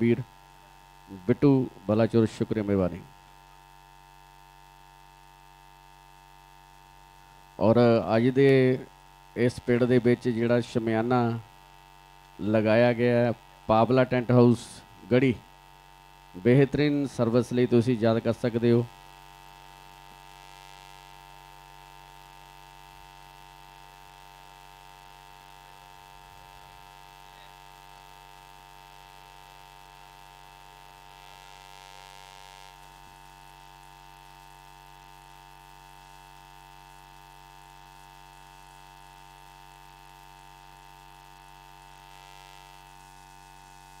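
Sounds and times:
electrical mains hum: 0.0s - 44.0s.

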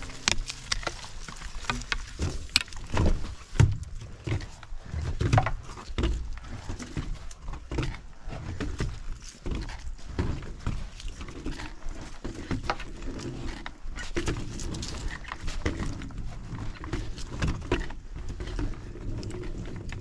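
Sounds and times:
rollerski wheels rumbling on boards: 0.0s - 20.0s
wheels clacking over board joints: 0.0s - 20.0s.

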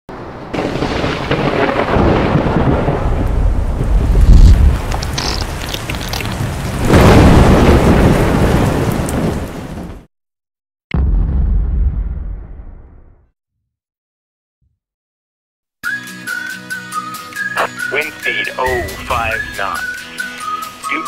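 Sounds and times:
heavy rain: 0.1s - 10.1s, 18.0s - 19.8s
thunder rolling: 0.1s - 10.1s, 11.0s - 13.1s
thunderclap: 0.1s - 10.1s, 11.0s - 13.2s.

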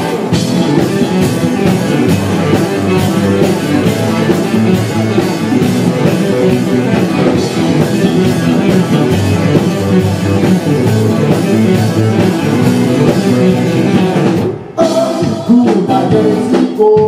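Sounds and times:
drum kit: 0.0s - 17.0s
electric guitar: 0.0s - 17.0s
live rock band playing: 0.0s - 17.0s.

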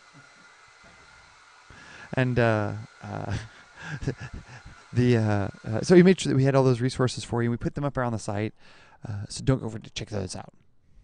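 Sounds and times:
hair dryer running: 0.0s - 6.8s.

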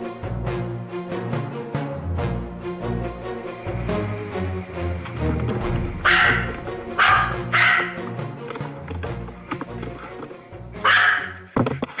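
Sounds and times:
background music: 0.0s - 12.0s
dog barking: 6.0s - 8.1s, 10.8s - 11.5s.

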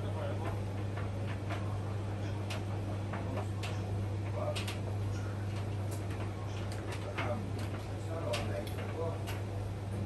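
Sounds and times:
washing machine and dryer hum: 0.0s - 10.0s.

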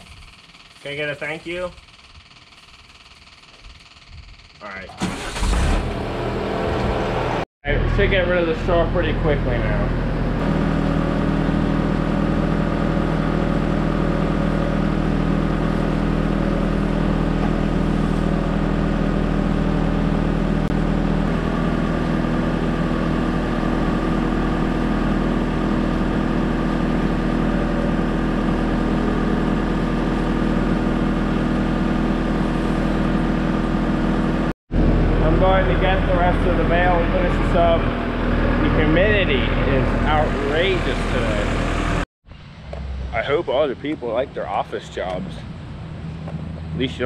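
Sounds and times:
loader engine running: 0.0s - 47.0s.

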